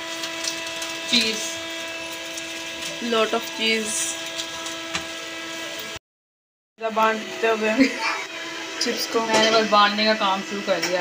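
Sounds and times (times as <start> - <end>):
steady machine hum: 0.0 - 6.0, 6.8 - 11.0.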